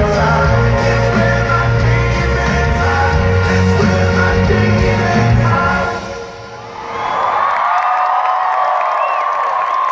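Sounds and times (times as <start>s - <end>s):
band music: 0.0s - 6.9s
crowd cheering and screaming: 6.0s - 9.9s.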